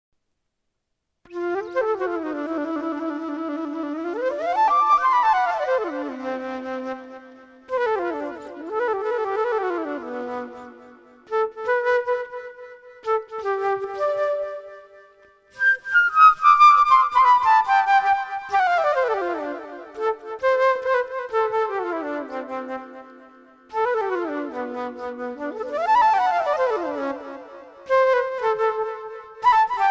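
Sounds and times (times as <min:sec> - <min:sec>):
solo flute improvising: 0:01.3 - 0:29.9.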